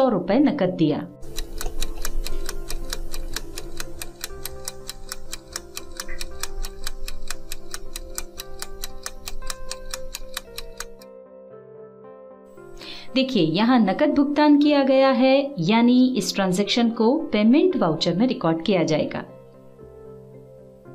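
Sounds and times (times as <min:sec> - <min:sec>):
clock-like ticking: 0:01.2 - 0:11.0.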